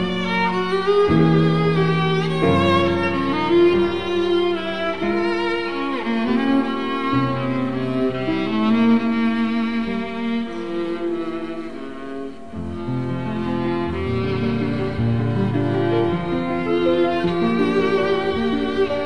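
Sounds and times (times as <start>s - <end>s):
slow bowed string music: 0.0s - 19.0s.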